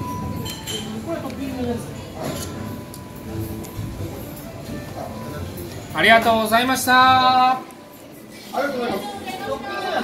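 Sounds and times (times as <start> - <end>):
tableware clinking: 0.0 - 10.0.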